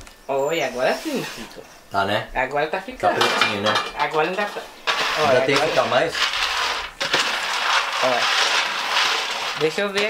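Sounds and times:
peanuts rattling in metal tray: 3.2 - 10.0.

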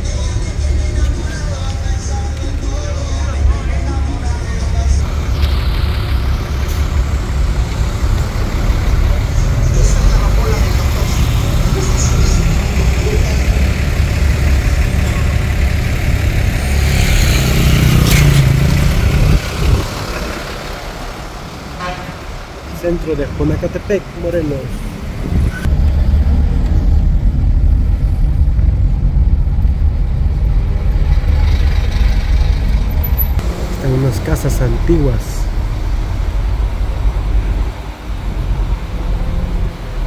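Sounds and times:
street traffic rumble: 0.0 - 40.0.

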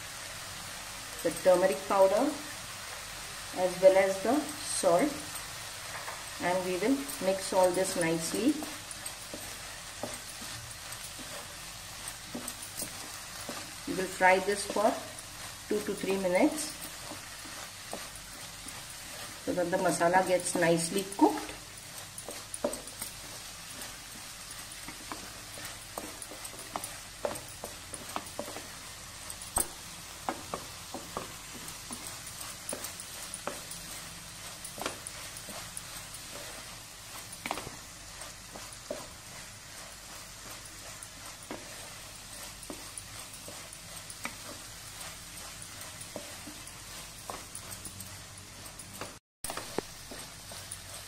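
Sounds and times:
food sizzling in a pan: 0.0 - 51.0
wooden spatula tapping and scraping: 4.0 - 51.0.

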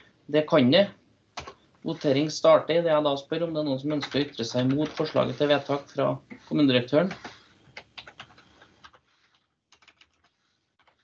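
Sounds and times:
computer keyboard keys clicking: 4.0 - 5.3, 7.1 - 9.0, 9.7 - 11.0.

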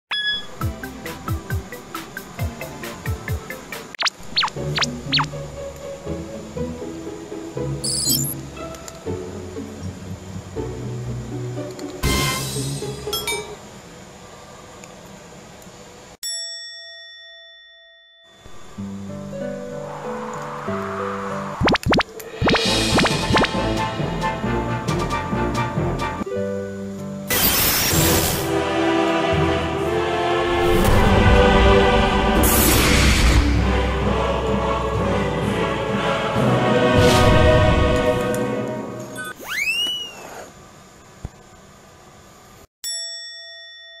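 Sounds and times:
bell ding ringing: 0.1 - 0.6, 16.2 - 18.5, 42.8 - 44.0.

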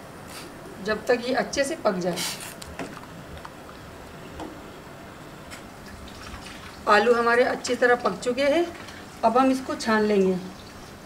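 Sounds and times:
water simmering with small bubbles: 5.7 - 9.2, 10.0 - 11.0
soft ticks and drips: 10.1 - 11.0.

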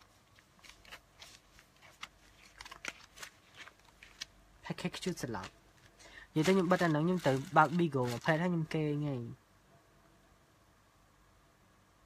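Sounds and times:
plastic sachets crinkling: 0.1 - 8.8.

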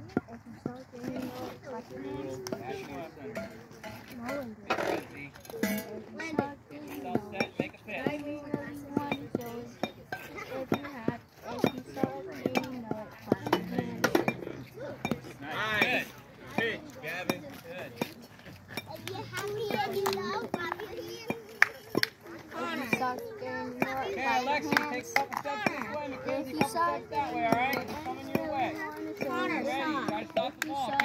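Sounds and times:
voices chattering: 0.0 - 31.0.

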